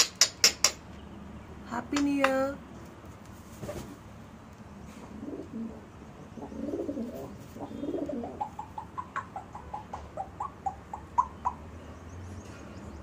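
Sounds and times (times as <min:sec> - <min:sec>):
parrot cooing mutters: 0:06.4 - 0:11.6.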